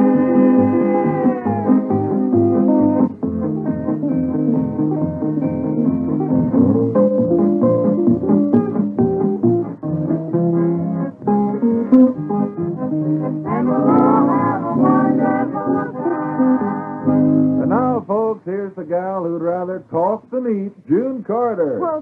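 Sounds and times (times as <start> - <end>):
country string-band music: 0.0 - 22.0
man talking: 17.6 - 22.0.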